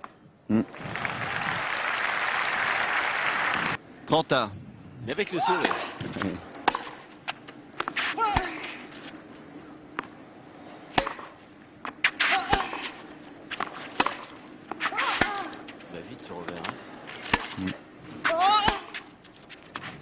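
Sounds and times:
racket hitting tennis ball: 5.6 - 9.0, 10.9 - 15.8, 16.5 - 17.6, 18.2 - 19.1.

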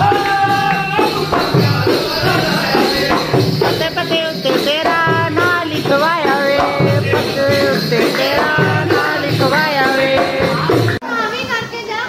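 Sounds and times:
hand drum dance rhythm: 0.0 - 11.0
person singing: 0.0 - 11.0
high voices talking and singing: 0.0 - 12.0.

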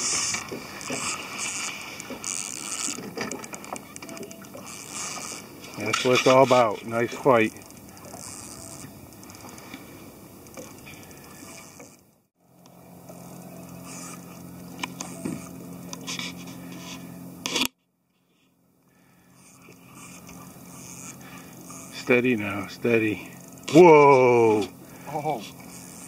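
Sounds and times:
fishing reel clicks: 0.0 - 9.8, 19.4 - 26.0.

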